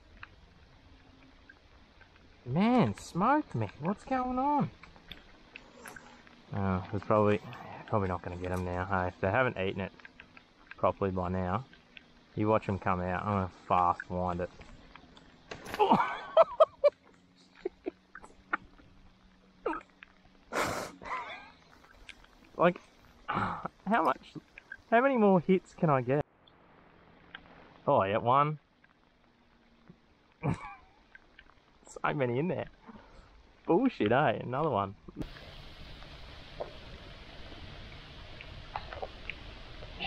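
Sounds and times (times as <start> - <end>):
faint steady hum: 0.0 - 40.0
outdoor background hiss: 0.0 - 40.0.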